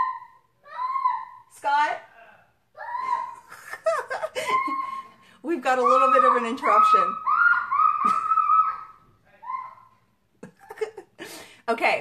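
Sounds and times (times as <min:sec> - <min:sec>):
child squealing: 0:00.0 - 0:01.5, 0:02.8 - 0:03.5, 0:04.4 - 0:05.0, 0:05.8 - 0:10.0.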